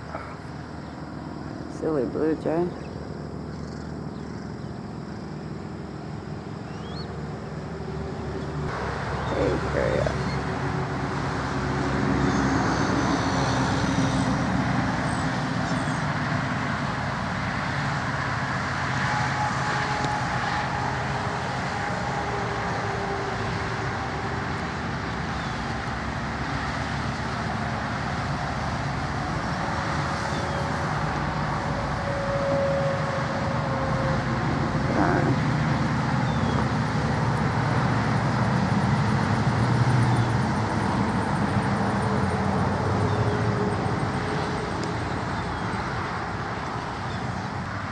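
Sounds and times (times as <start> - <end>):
road traffic noise: 0.0 - 47.9.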